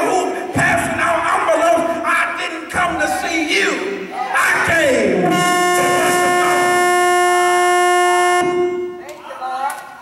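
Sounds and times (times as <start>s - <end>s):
voices: 0.0s - 10.0s
loud held note: 5.3s - 9.0s.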